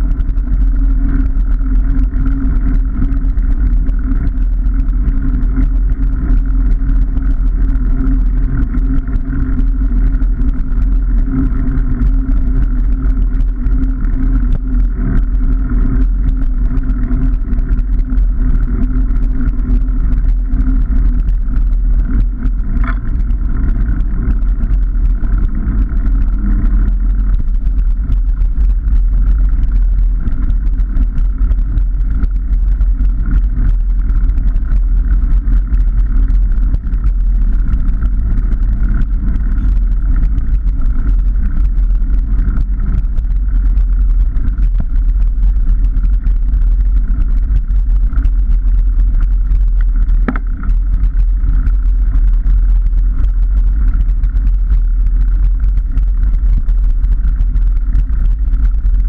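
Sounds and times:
bicycle tyre rolling on tarmac: 0:00.0 - 0:59.0.

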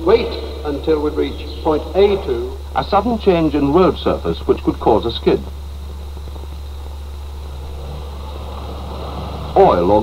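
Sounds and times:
even hiss: 0:00.0 - 0:10.0
car driving on road: 0:07.2 - 0:10.0.

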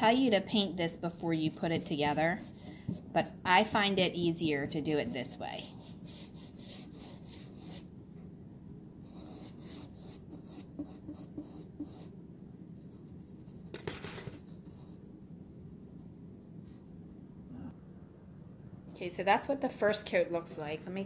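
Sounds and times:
paintbrush scratching on wood: 0:01.3 - 0:03.2, 0:04.9 - 0:07.9, 0:09.0 - 0:12.1.

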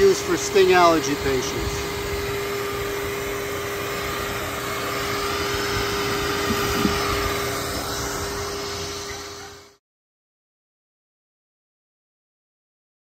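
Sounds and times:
vacuum droning: 0:00.0 - 0:09.8.

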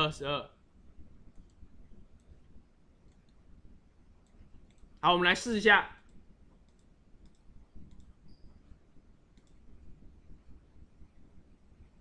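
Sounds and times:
faint computer mouse clicks: 0:03.0 - 0:03.4, 0:04.2 - 0:05.0, 0:06.0 - 0:09.7.

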